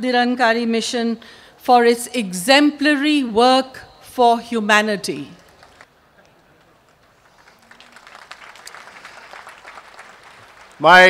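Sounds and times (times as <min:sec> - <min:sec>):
audience applauding faintly: 0:05.5 - 0:11.0.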